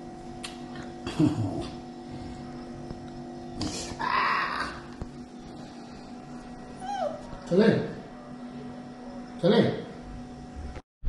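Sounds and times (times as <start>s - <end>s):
puppy whining: 6.6s - 7.5s.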